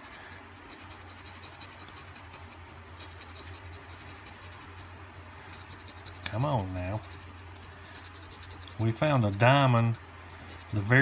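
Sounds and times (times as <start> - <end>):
coin scratching lottery ticket: 0.0 - 11.0.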